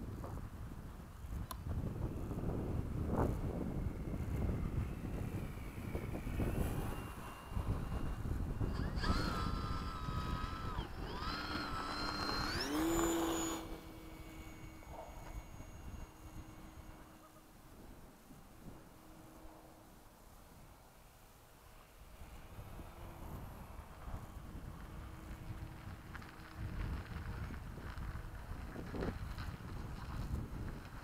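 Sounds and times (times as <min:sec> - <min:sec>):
wind rumbling on microphone: 0:00.0 - 0:20.9, 0:22.0 - 0:31.0
model plane electric motor whine: 0:00.1 - 0:20.7, 0:21.8 - 0:31.0.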